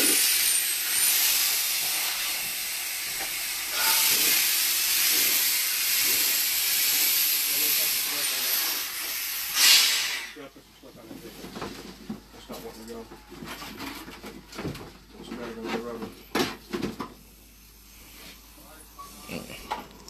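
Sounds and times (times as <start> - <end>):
pressurized rig hissing: 0.0 - 10.5.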